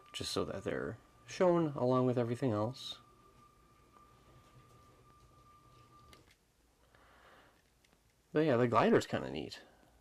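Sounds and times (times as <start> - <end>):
thin high whine: 0.0 - 7.7.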